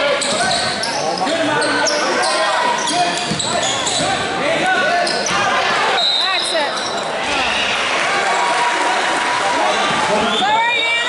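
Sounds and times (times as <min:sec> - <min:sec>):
sneakers squeaking: 0:00.2 - 0:07.7
basketball bouncing on hardwood floor: 0:03.3 - 0:03.5.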